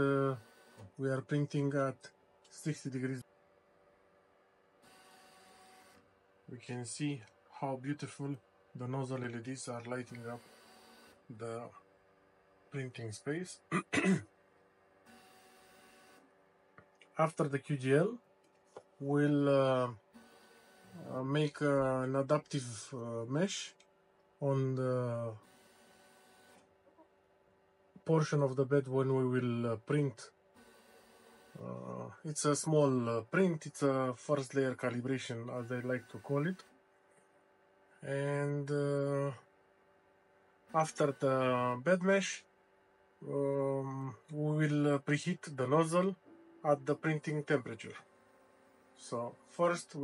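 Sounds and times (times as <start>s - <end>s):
printer fans and motors whirring: 0.0s - 1.7s, 4.8s - 7.1s, 8.8s - 12.2s, 15.0s - 16.4s, 19.2s - 21.8s, 25.0s - 26.7s, 30.6s - 31.9s, 34.4s - 36.7s, 40.7s - 42.2s.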